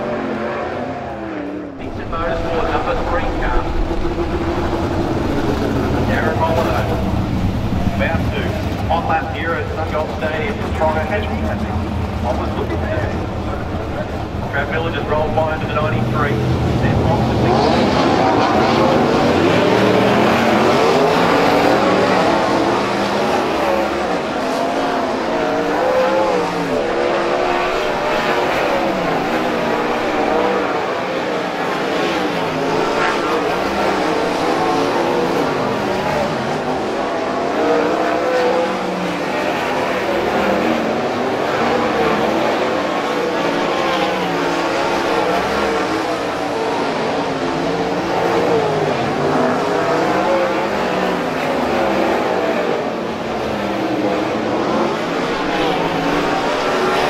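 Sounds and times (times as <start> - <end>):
racing car engines revving: 0.0 - 57.0.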